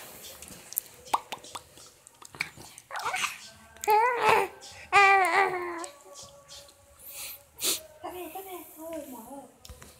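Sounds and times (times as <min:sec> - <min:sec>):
baby babbling: 0:03.0 - 0:05.9.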